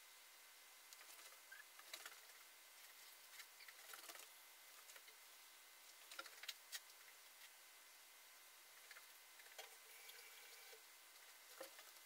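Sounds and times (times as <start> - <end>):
heating water ticks and crackles: 0.8 - 12.0.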